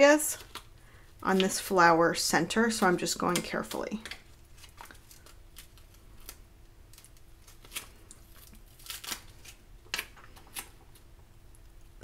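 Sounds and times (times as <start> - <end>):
vinyl crackling while peeled: 2.4 - 12.0.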